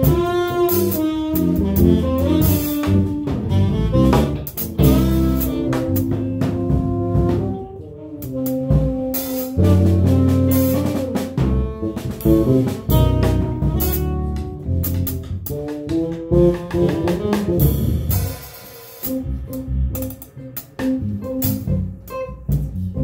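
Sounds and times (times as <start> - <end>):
jazz band playing: 0.0 - 23.0
tenor saxophone: 0.0 - 23.0.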